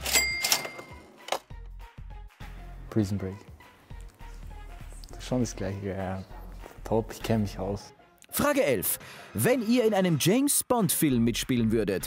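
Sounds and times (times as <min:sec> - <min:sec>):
cash register cha-ching: 0:00.0 - 0:01.4
background music: 0:00.0 - 0:12.0.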